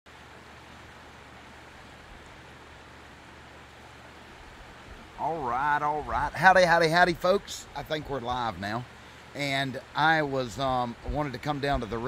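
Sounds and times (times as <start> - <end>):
river flowing over rocks: 0.1 - 12.0.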